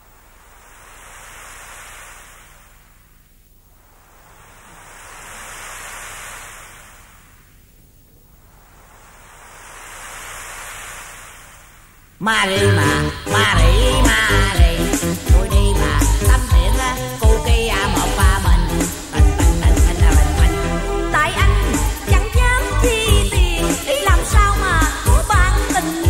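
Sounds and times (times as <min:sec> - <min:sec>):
ocean waves washing in: 0:00.0 - 0:25.1.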